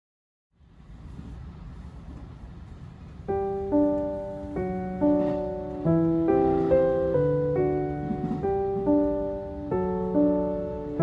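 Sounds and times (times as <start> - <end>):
train wheels rumbling on track: 0.8 - 10.6.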